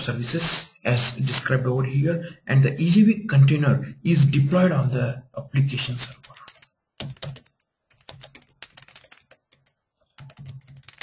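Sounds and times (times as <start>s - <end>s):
computer keyboard typing: 6.1s - 11.0s.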